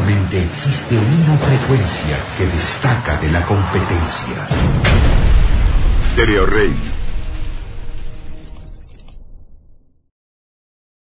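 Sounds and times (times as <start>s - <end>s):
crashing sound effect: 1.2s - 10.0s.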